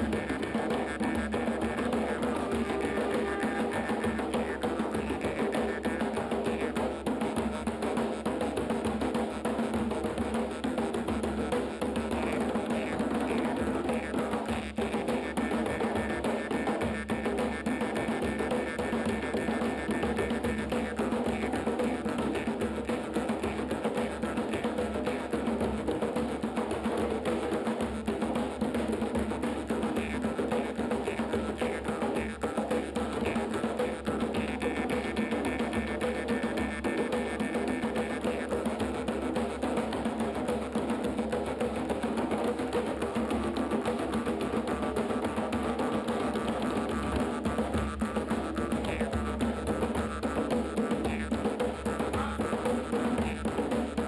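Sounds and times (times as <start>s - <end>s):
hand drums playing: 0.0s - 54.0s.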